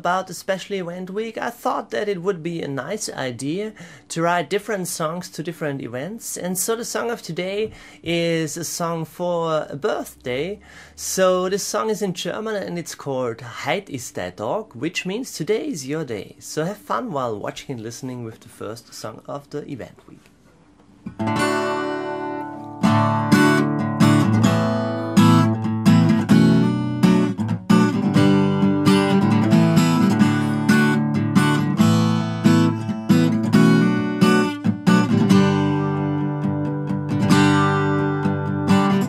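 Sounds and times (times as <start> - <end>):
acoustic guitar strumming: 21.1 - 39.0.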